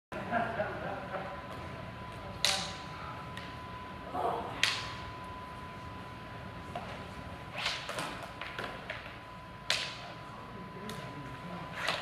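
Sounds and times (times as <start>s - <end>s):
thin steady hum: 0.2s - 12.0s.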